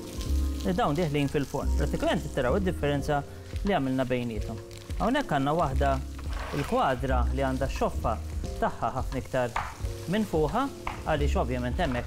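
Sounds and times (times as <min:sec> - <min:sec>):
background music: 0:00.0 - 0:12.0
food sizzling in frying pans: 0:00.0 - 0:12.0.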